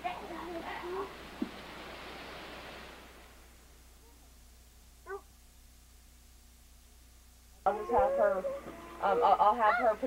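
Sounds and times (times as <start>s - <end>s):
faint background hiss: 0.0s - 10.0s
low steady hum: 0.0s - 10.0s.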